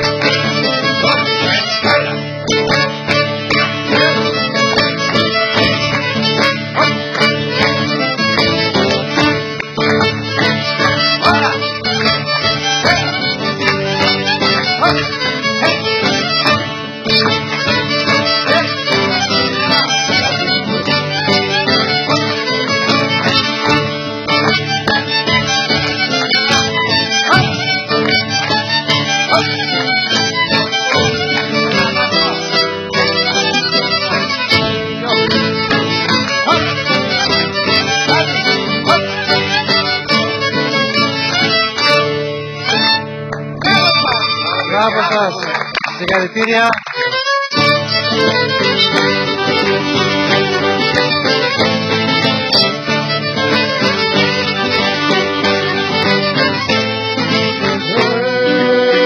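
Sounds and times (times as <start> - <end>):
folk dance music led by violin: 0.0 - 59.0.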